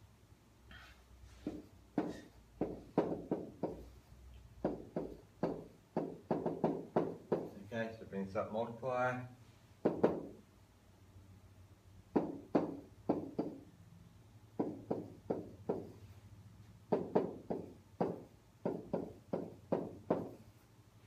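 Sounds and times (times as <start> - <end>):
stylus knocking on whiteboard: 1.4 - 3.9, 4.6 - 7.6, 9.8 - 10.4, 12.1 - 13.6, 14.6 - 16.0, 16.9 - 20.4.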